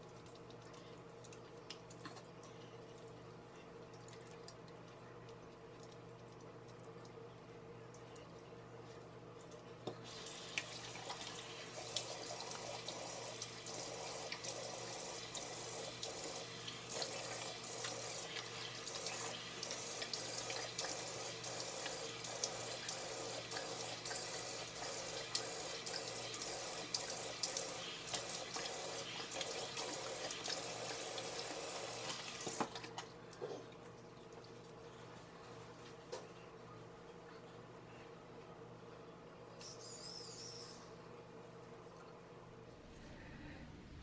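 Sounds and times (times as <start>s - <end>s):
faucet running into sink: 10.0s - 33.0s.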